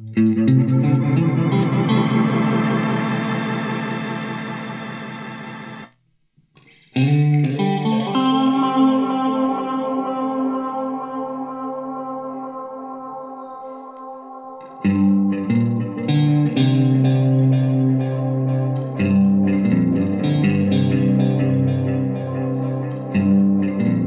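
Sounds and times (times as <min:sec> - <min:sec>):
electric guitar chord with delay: 0:00.2 - 0:05.9, 0:14.5 - 0:24.0.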